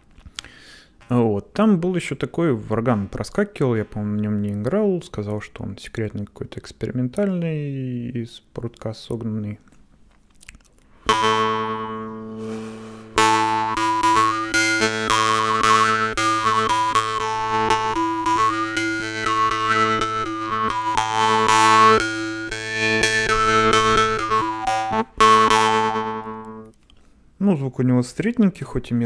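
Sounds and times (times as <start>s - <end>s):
jaw harp playing: 11.0s - 26.8s.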